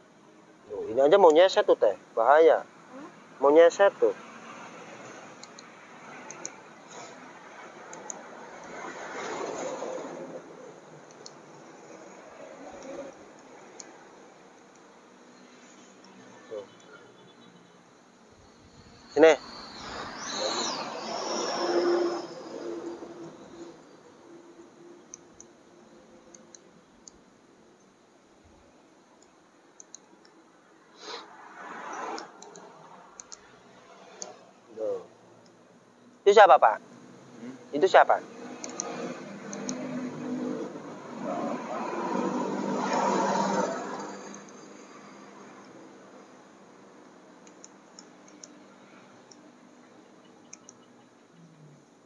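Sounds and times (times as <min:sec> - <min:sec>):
noise with high whine: 0:00.0 - 0:52.0
road vehicle passing by: 0:01.8 - 0:26.6, 0:30.8 - 0:35.5, 0:36.5 - 0:52.0
nail clipper clicks: 0:38.6 - 0:38.9.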